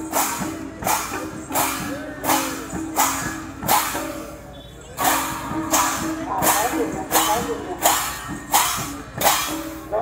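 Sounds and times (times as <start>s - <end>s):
brass hand cymbals clashing: 0.0s - 10.0s
clay barrel drums: 0.0s - 10.0s.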